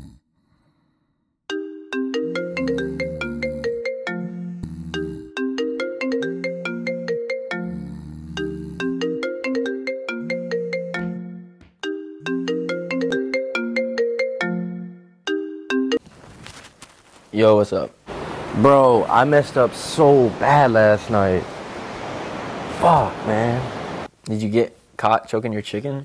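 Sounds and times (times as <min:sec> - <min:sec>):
mobile phone ringtone melody: 0:01.5 - 0:04.5, 0:05.2 - 0:07.7, 0:08.8 - 0:16.0.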